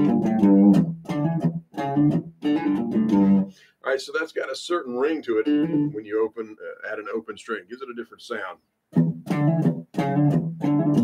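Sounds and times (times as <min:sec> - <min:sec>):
electric guitar blues-rock riff: 0:00.0 - 0:03.5, 0:05.3 - 0:06.0, 0:09.0 - 0:11.0.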